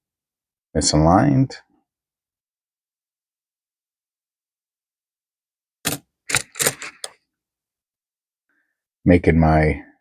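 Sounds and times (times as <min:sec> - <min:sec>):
coin handling clicks and rustles: 0:05.9 - 0:07.2.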